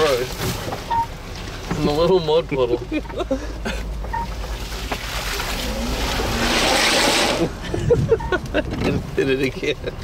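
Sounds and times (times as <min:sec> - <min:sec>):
tyres spraying water and mud: 0:00.0 - 0:08.3.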